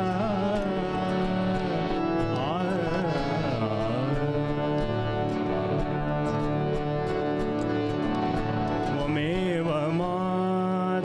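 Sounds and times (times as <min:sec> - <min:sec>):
bass guitar: 0:00.0 - 0:10.6
acoustic and electric guitars: 0:00.0 - 0:11.0.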